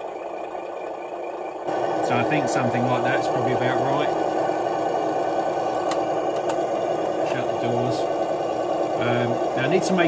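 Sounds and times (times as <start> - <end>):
simulated engine sound from speaker: 0.0 - 10.0.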